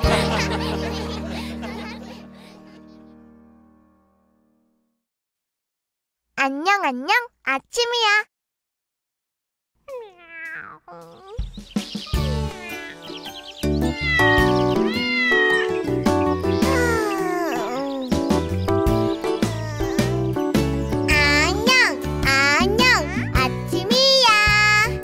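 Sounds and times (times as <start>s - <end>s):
children's song music: 0.0s - 3.8s, 10.4s - 25.0s
cartoon cat meowing: 9.9s - 11.5s, 12.1s - 13.1s, 13.9s - 15.9s, 16.6s - 18.1s.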